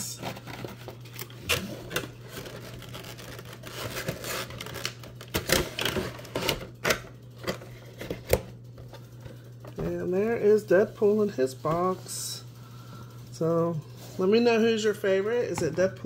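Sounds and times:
plastic and cardboard rustling: 0:00.0 - 0:12.4.

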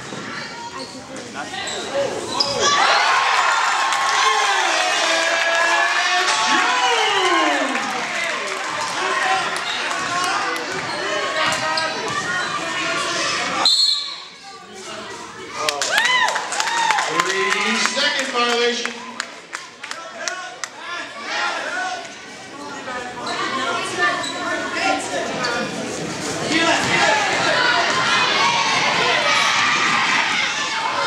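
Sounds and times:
sneakers squeaking: 0:00.0 - 0:02.8, 0:09.6 - 0:15.5, 0:22.1 - 0:27.1
many voices shouting: 0:02.5 - 0:11.5, 0:26.7 - 0:31.0.

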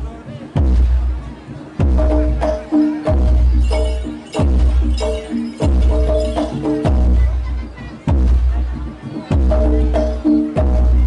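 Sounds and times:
bass drum beats: 0:00.0 - 0:11.0
bright metallic clashing: 0:03.5 - 0:06.9
gong-chime tones: 0:03.6 - 0:06.8.

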